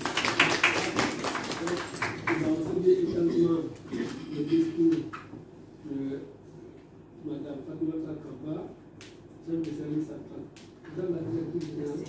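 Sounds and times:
small group applauding: 0:00.0 - 0:02.8.

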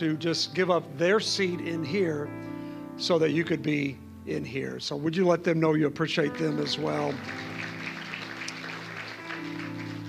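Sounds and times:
audience applauding: 0:06.4 - 0:10.0.

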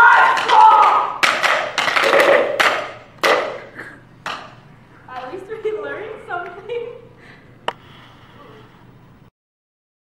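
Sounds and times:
sharp knocks: 0:00.2 - 0:04.6.

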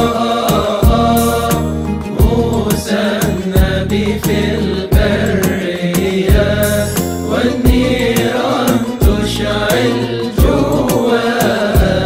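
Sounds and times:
chanted hymn melody: 0:00.0 - 0:12.0
steady beat: 0:00.0 - 0:12.0.

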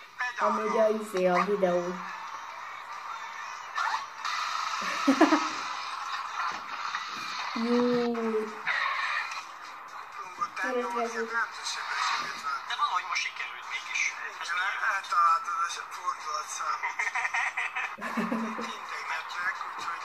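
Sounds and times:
music from tv speaker: 0:00.0 - 0:20.0.

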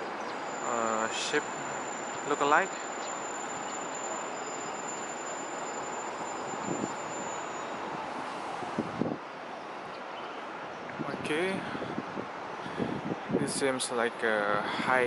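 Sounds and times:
thin high steady whine: 0:00.0 - 0:09.5
distant traffic hiss: 0:00.0 - 0:15.0.

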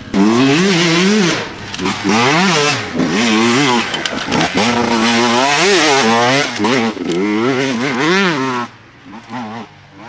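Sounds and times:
dirt bike engine revving: 0:00.0 - 0:10.0.

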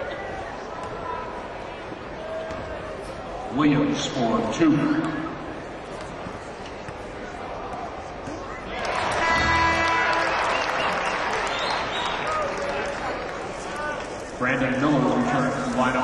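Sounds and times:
arena crowd noise: 0:00.0 - 0:16.0
arena horn: 0:09.2 - 0:10.7.

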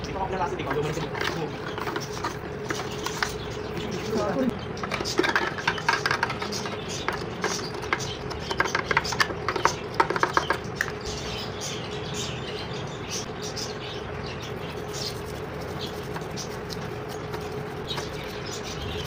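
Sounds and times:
clicks and scrapes on plastic: 0:00.6 - 0:03.6, 0:04.8 - 0:11.0, 0:15.2 - 0:18.8.

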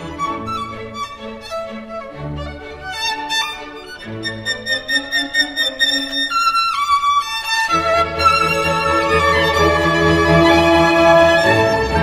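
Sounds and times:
solo violin playing: 0:00.0 - 0:12.0.

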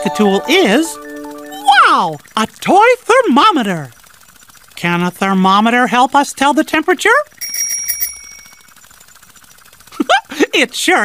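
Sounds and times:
bell trill: 0:00.0 - 0:02.2, 0:07.4 - 0:08.7.

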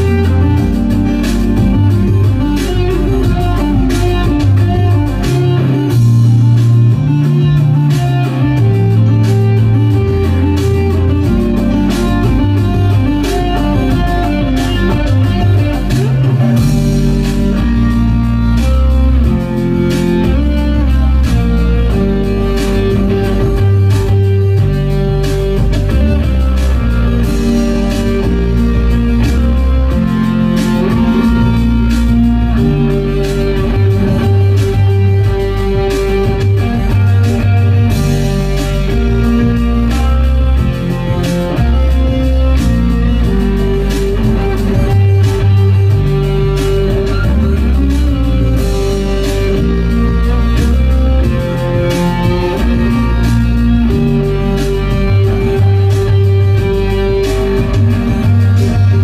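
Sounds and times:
deep sustained bass notes: 0:00.0 - 0:59.0
electric guitar melody: 0:00.0 - 0:59.0.

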